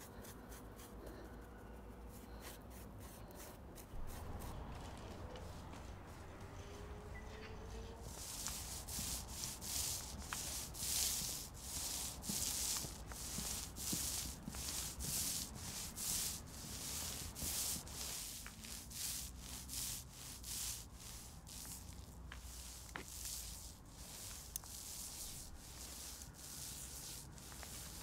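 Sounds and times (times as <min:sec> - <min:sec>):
brush scrubbing tarmac: 0:02.1 - 0:28.0.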